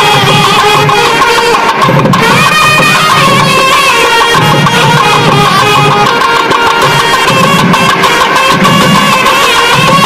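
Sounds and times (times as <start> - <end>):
double-reed pipes playing melody: 0.0 - 10.0
drums beating rhythmically: 0.0 - 10.0.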